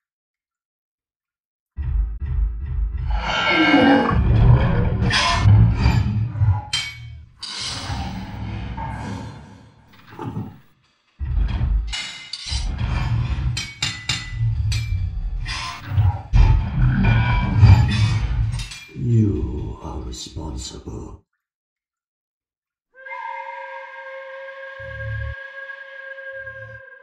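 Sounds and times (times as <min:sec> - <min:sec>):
dramatic soundtrack music: 0:01.8 - 0:09.9
heavy rumbling: 0:01.8 - 0:10.6, 0:11.2 - 0:20.1.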